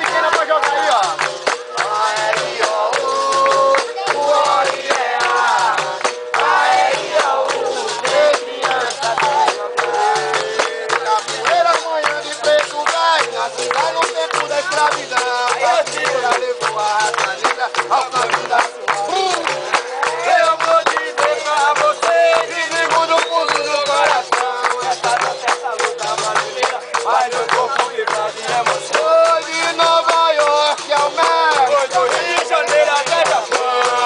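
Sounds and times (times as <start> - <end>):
hand clapping: 0.0 - 34.0
people singing: 0.0 - 34.0.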